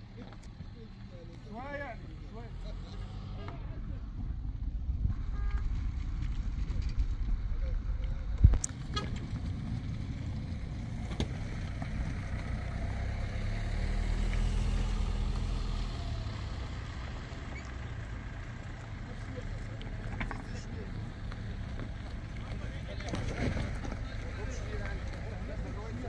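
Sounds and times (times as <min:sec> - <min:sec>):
vehicle engine rumbling: 0:00.0 - 0:26.0.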